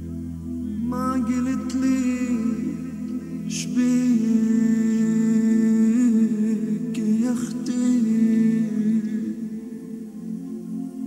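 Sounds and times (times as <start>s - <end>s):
man chanting: 0.7s - 10.8s.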